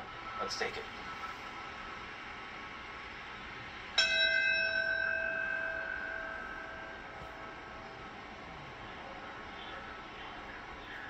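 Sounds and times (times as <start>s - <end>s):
brass bell ringing: 4.0s - 8.1s.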